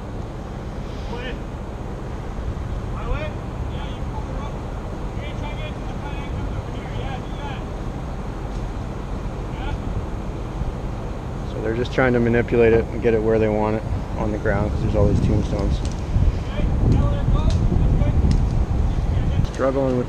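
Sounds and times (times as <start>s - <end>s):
distant voices calling out: 0.0s - 20.0s
engine humming: 0.0s - 20.0s
wind on microphone: 13.7s - 20.0s.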